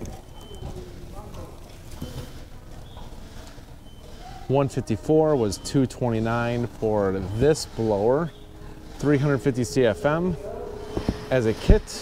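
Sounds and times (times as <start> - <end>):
store background rumble: 0.0 - 12.0.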